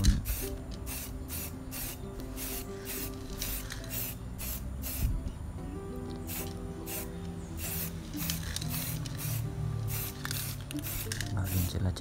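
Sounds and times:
spray paint can hissing: 0:00.0 - 0:05.2, 0:06.1 - 0:12.0.

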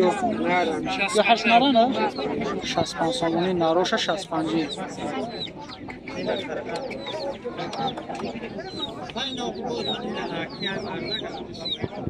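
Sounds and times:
chickens clucking: 0:00.0 - 0:12.0
people talking: 0:00.0 - 0:12.0.

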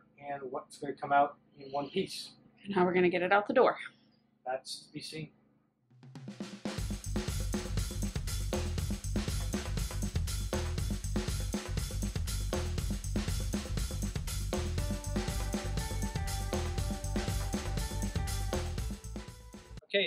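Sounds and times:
drum-kit beat: 0:06.0 - 0:19.8.

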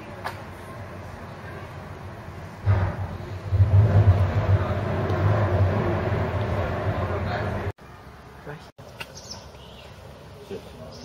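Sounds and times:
rushing noise: 0:02.0 - 0:07.8
low rumble: 0:02.5 - 0:07.8.

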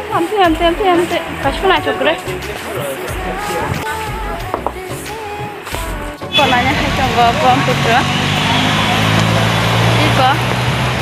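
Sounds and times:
indistinct voices: 0:00.0 - 0:10.5
low engine hum: 0:00.5 - 0:11.0.

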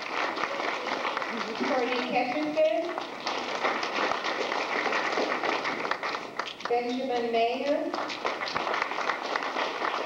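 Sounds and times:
audience applauding: 0:00.0 - 0:06.8, 0:07.9 - 0:10.0.

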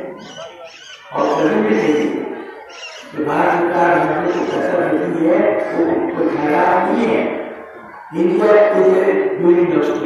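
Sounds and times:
man speaking over loudspeaker: 0:00.0 - 0:10.0.

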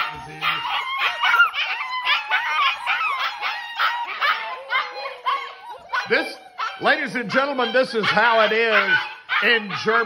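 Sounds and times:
puppies whining and yipping: 0:00.0 - 0:10.0.

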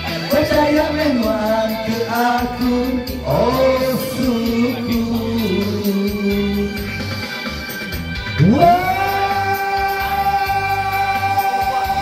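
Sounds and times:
backing music: 0:00.0 - 0:12.0
man singing karaoke: 0:00.0 - 0:12.0.

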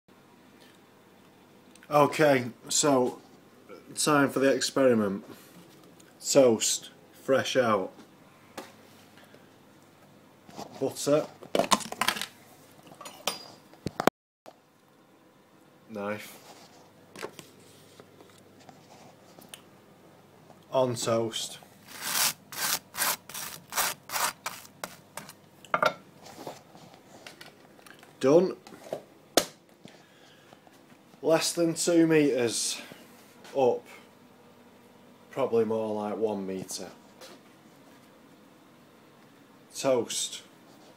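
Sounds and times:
knife scraping butter on toast: 0:21.9 - 0:25.4.

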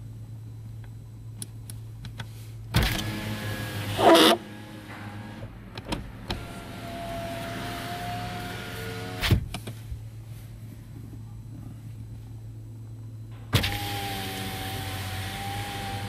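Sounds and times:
electric window motor whine: 0:02.8 - 0:09.4, 0:13.4 - 0:16.0.

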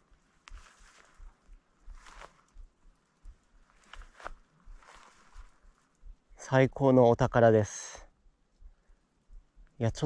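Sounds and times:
footsteps on trail: 0:00.0 - 0:06.2.

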